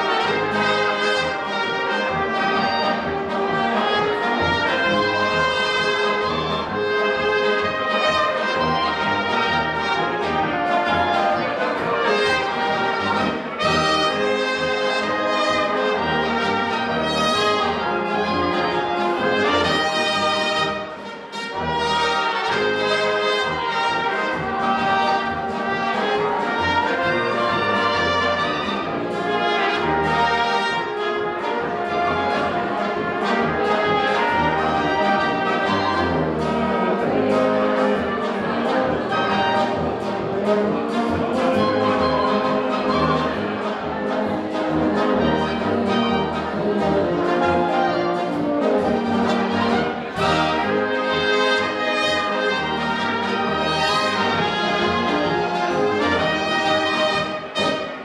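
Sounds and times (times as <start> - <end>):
brass band playing: 0.0 - 58.0
flugelhorn and trumpet melody: 0.0 - 58.0.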